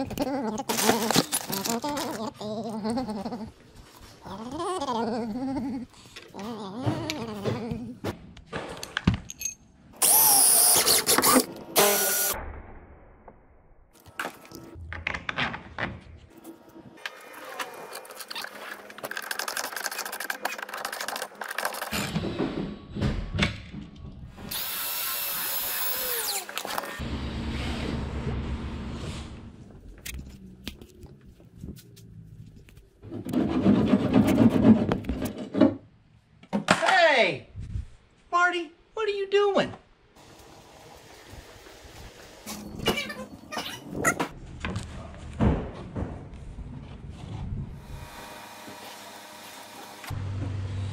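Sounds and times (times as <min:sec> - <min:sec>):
electric drill drilling plastic: 0:10.0 - 0:12.4.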